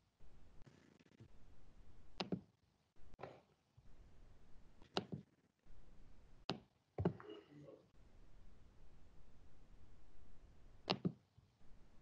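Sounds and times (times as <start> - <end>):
computer mouse clicks: 2.2 - 2.4, 10.8 - 11.2.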